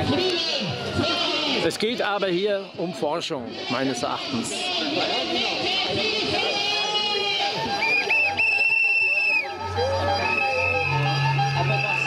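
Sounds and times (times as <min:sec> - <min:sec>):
crowd murmur: 0:00.0 - 0:12.0
whistle blasts: 0:07.8 - 0:09.5, 0:10.2 - 0:12.0.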